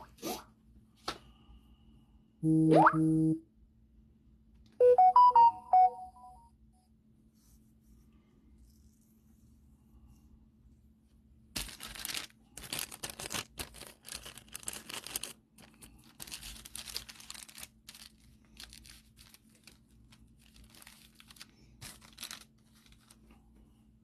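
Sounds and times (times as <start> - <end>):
packaging torn and crinkled: 11.5 - 23.3.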